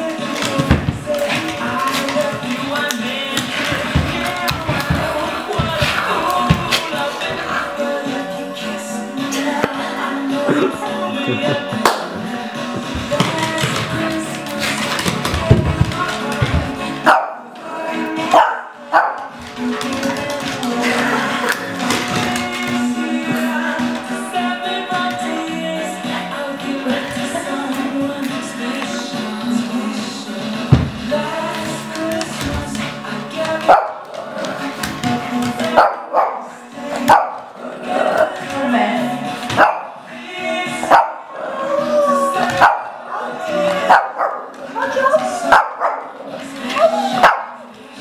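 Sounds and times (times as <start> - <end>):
radio music: 0.0 - 48.0
dog barking: 17.0 - 17.4, 18.3 - 19.3, 33.7 - 34.0, 35.7 - 37.4, 39.6 - 40.0, 40.9 - 41.2, 42.5 - 43.0, 43.8 - 44.5, 45.4 - 46.1, 47.1 - 47.6
small dog barking: 47.2 - 47.6.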